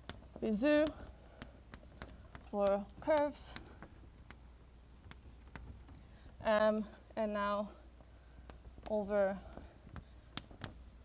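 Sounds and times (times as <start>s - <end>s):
chalk tapping and scratching: 0.0s - 6.3s, 8.3s - 11.0s.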